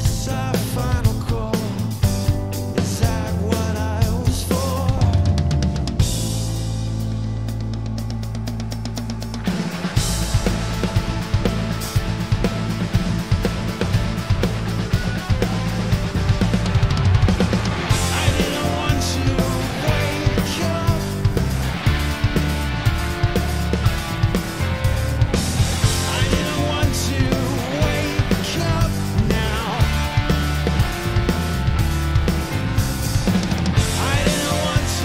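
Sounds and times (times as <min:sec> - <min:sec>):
drum kit playing: 0:00.0 - 0:35.0
progressive rock song: 0:00.0 - 0:35.0.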